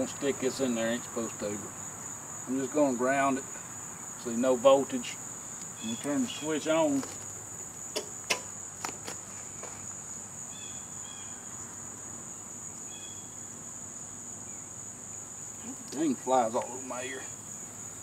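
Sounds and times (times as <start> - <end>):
insects trilling: 0.0 - 18.0.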